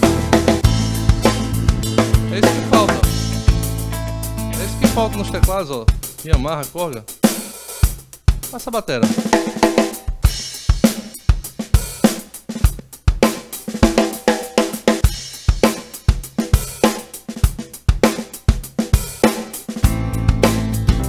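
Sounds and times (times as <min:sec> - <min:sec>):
sustained bass and chord: 0:00.0 - 0:05.7, 0:19.9 - 0:21.0
pop-rock drum pattern: 0:00.0 - 0:21.0.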